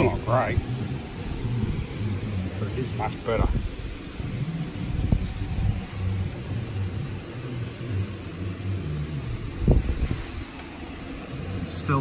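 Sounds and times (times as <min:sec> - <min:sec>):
low steady rumble: 0:00.0 - 0:12.0
wavering hum: 0:00.0 - 0:12.0.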